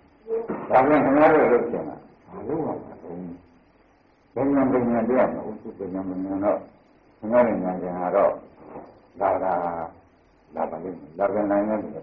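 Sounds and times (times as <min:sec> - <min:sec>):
man talking muffled: 0:00.4 - 0:03.4, 0:04.4 - 0:08.4, 0:09.2 - 0:09.9, 0:10.5 - 0:12.0.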